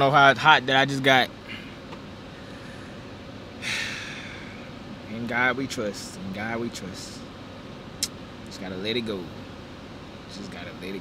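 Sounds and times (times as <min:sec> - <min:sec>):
low hum inside car: 0:00.0 - 0:11.0
man sighing heavily: 0:03.6 - 0:04.7.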